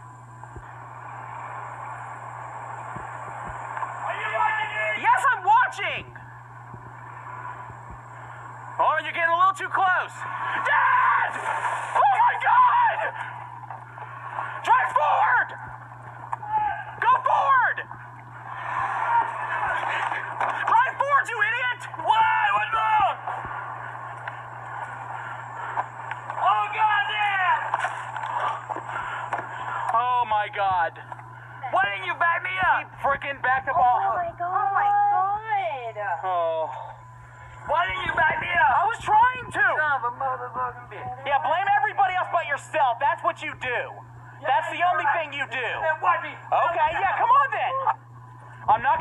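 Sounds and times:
steady low hum: 0.0 - 49.0
people yelling in alarm: 10.4 - 13.5, 14.6 - 15.6, 16.4 - 17.8, 18.5 - 23.3.

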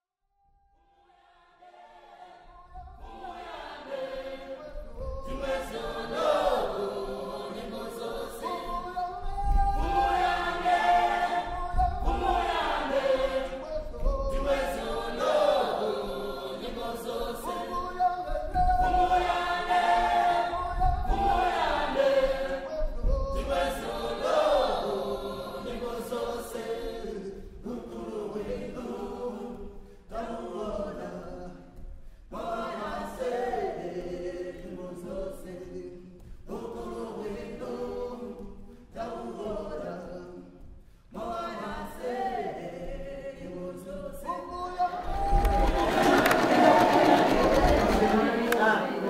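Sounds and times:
choir singing: 0.8 - 49.0.

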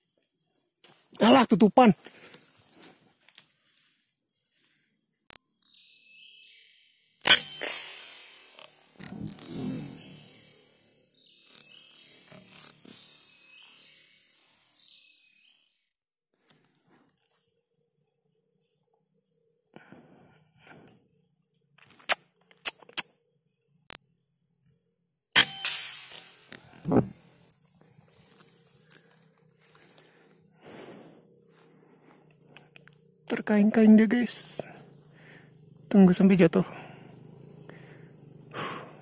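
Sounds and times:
rifle shot: 25.4 - 26.3.

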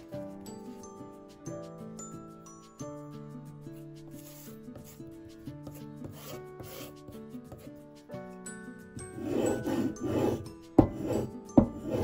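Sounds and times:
background music: 0.0 - 12.0
wooden spatula scraping leather: 4.0 - 7.8, 9.1 - 12.0.

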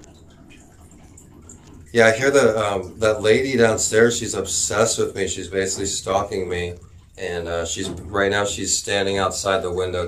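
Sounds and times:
man speaking: 2.0 - 10.0.

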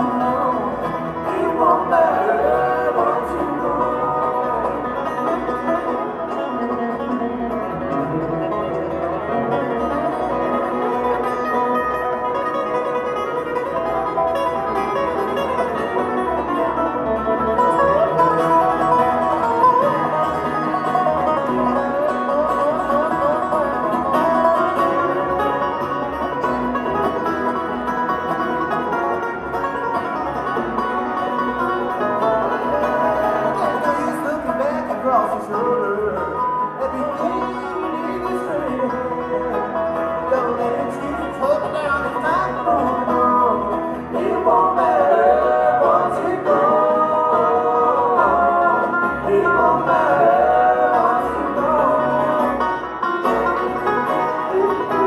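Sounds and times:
banjo: 0.0 - 55.0
dobro: 0.0 - 55.0
fiddle: 0.0 - 55.0
guitar: 0.0 - 55.0
upright bass: 0.0 - 55.0.

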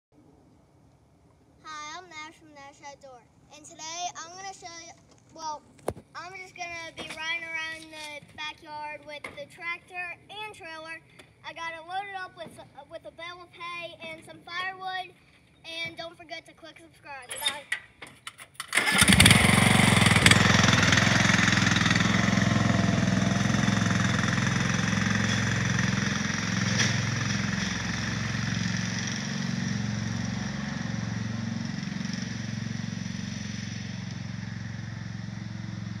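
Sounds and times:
lawn mower engine starting and running: 17.3 - 36.0.

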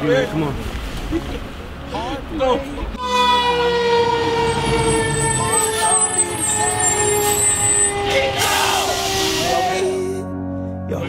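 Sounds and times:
fire engine siren: 3.0 - 10.0.

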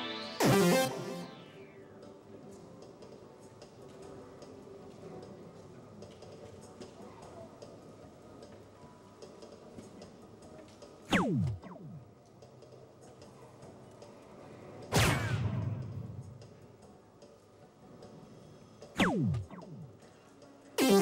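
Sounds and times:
electronic sweep falling in pitch: 0.0 - 1.6, 11.1 - 12.0, 19.0 - 19.9, 20.8 - 21.0.

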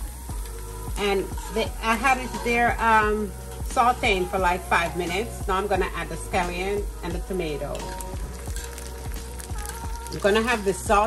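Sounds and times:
soft background music: 0.0 - 11.0
vegetables sizzling in oil: 0.0 - 11.0.

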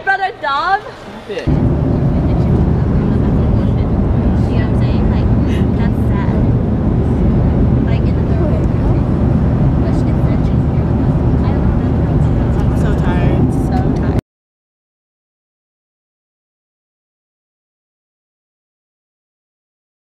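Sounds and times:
airliner cabin rumble: 1.5 - 14.2.

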